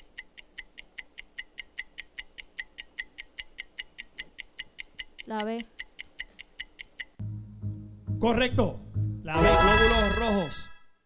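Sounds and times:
countdown timer ticking: 0.0 - 10.6.

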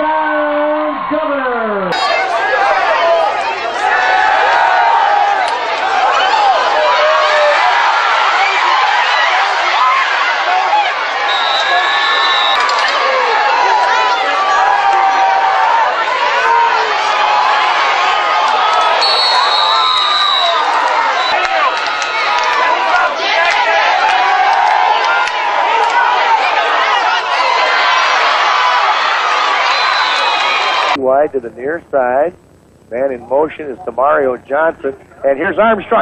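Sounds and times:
crowd talking and cheering: 0.0 - 32.3
high whistle-like tones: 11.2 - 12.7, 19.0 - 21.5, 29.6 - 30.9.

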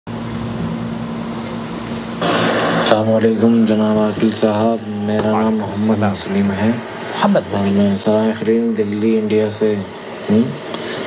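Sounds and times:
constant hiss: 0.1 - 11.0
low machine hum: 0.1 - 11.0.

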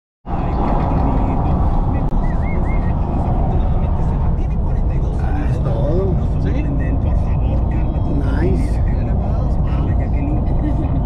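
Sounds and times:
car road and wind noise: 0.3 - 11.0.

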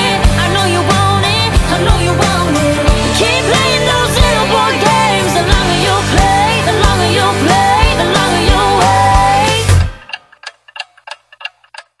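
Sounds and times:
sharp clock-like ticks: 6.6 - 12.0.

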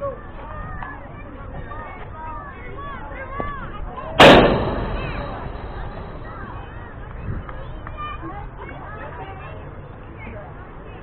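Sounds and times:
faint children's voices: 0.0 - 11.0
sharp ringing crack: 4.2 - 6.6.

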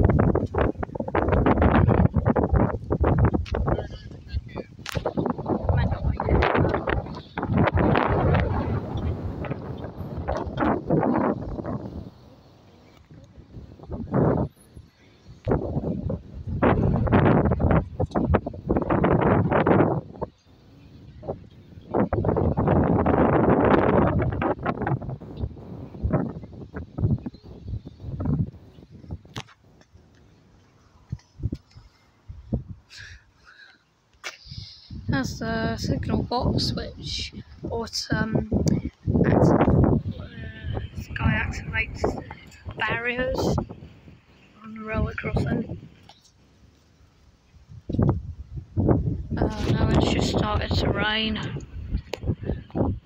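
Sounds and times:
wind buffeting microphone: 0.0 - 33.3, 34.4 - 53.0.

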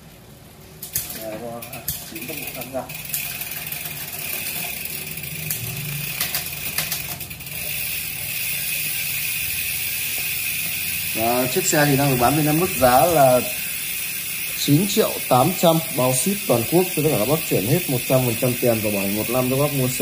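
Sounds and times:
bike chain whirring: 0.0 - 20.0
bike drivetrain clicks: 0.8 - 20.0.

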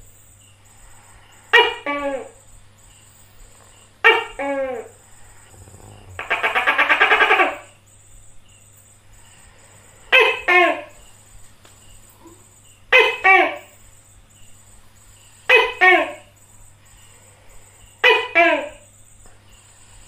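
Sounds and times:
gecko calling: 3.7 - 7.8.

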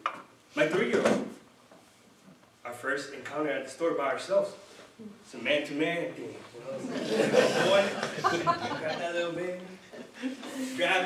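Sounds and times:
man speaking: 5.3 - 9.8, 10.7 - 11.0.

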